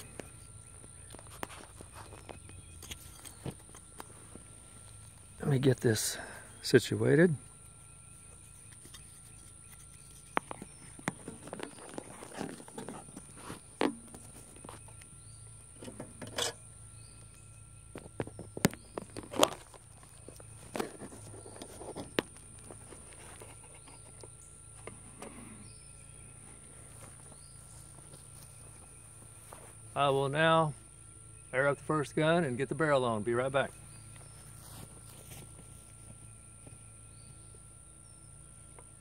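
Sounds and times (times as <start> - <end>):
handling clicks and rustles: 0.0 - 6.2, 7.6 - 29.9
footsteps in grass: 26.5 - 29.9, 34.0 - 36.2.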